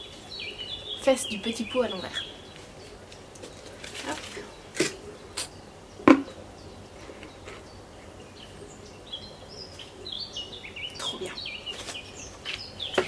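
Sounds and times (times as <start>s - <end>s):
birds chirping faintly: 0.0s - 13.0s
plastic plant pots knocking: 6.1s - 6.4s.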